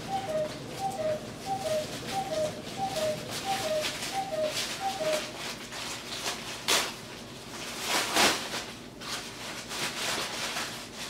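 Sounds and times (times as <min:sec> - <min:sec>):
bird calling two-note phrase: 0:00.0 - 0:05.3.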